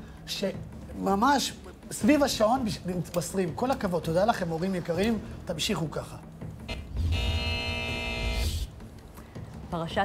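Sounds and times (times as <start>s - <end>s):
held electronic chord: 6.7s - 8.7s.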